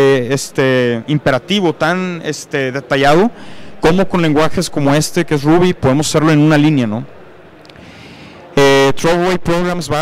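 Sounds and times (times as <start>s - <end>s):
faint hall background: 0.0s - 10.0s.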